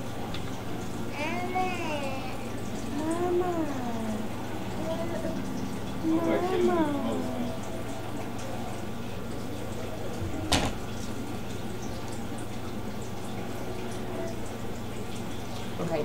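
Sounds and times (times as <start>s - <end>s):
steady low hum: 0.0s - 16.0s
faint voices: 1.1s - 8.8s.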